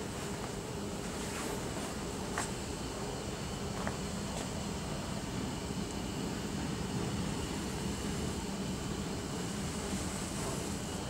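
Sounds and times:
metro station rushing hum: 0:00.0 - 0:11.0.

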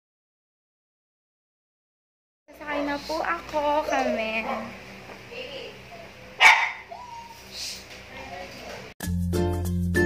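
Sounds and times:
dog barking: 0:03.9 - 0:04.8, 0:05.9 - 0:07.3.

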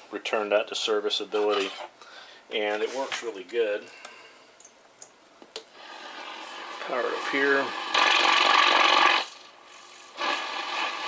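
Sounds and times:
quiet room hiss: 0:00.0 - 0:07.9.

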